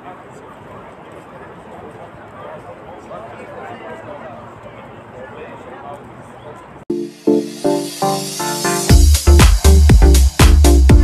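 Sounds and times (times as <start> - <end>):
crowd chatter: 0.0 - 6.9.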